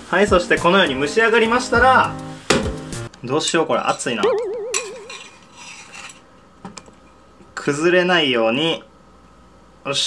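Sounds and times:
metal chopsticks scraping plate: 4.8 - 6.2.

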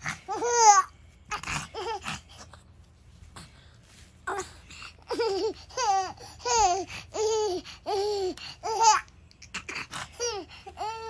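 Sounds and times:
baby laughing: 0.0 - 2.4, 4.9 - 11.0.

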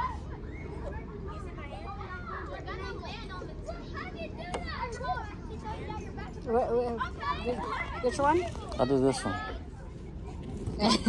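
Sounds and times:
children calling and chattering: 0.0 - 11.0.

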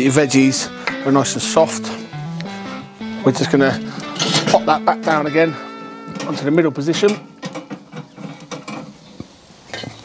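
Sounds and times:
metal clinks and scrapes: 4.1 - 4.8, 6.1 - 9.0.

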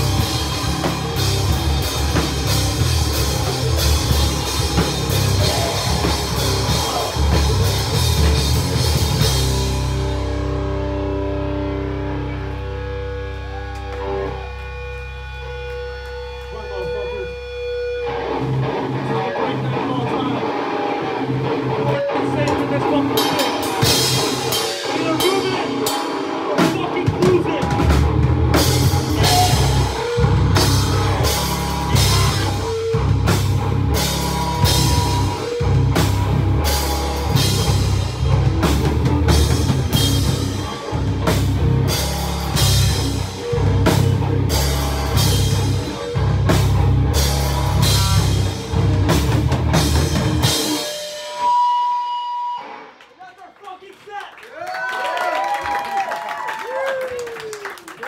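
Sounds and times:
live heavy rock band: 0.0 - 53.1.

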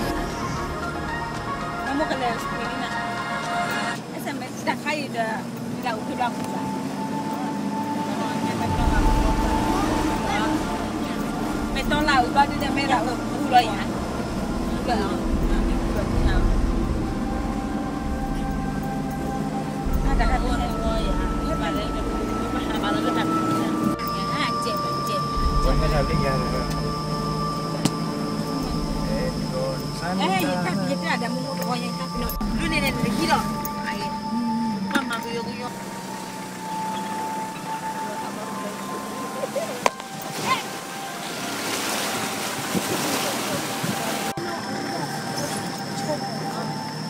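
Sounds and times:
steady high tone: 0.0 - 4.0, 5.8 - 47.0
low vehicle rumble: 0.0 - 4.7, 5.4 - 39.9
voices: 0.0 - 47.0
wind buffeting microphone: 8.4 - 24.0.

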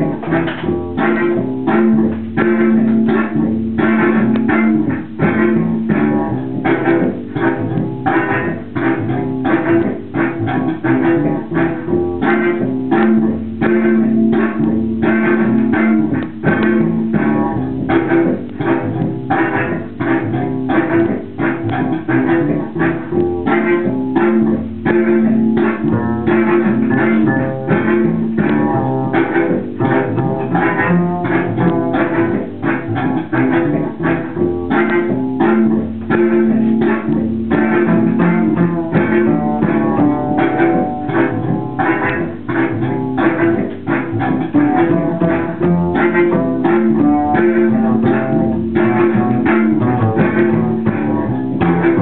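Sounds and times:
double bass plucked notes: 0.0 - 52.0
held low looped notes: 0.0 - 52.0.

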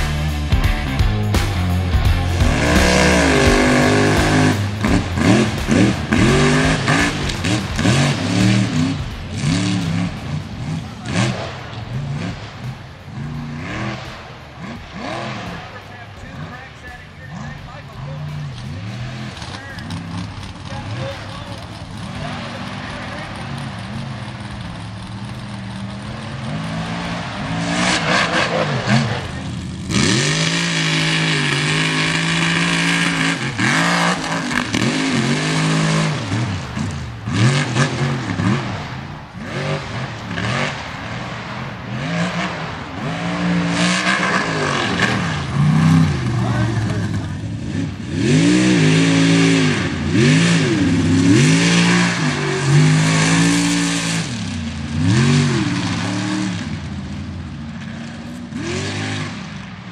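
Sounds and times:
steady rushing noise: 0.0 - 58.2
truck engine revving: 0.0 - 59.9.

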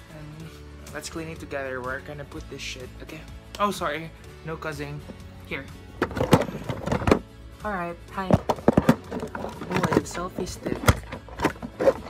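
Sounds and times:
quiet background music: 0.0 - 12.0
camera handling knocks and rubbing: 6.0 - 7.2, 8.4 - 12.0.

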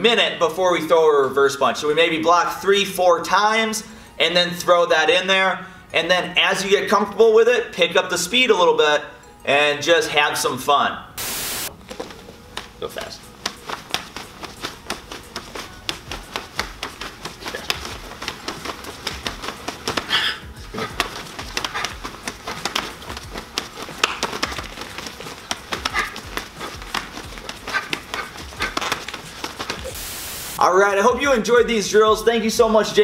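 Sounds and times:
forearms and sleeves slapping: 11.9 - 30.0.

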